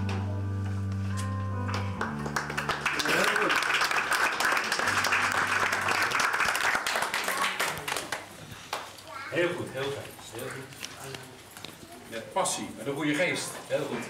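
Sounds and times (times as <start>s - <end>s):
audience applauding: 1.7s - 8.9s
crowd talking quietly: 3.0s - 14.0s.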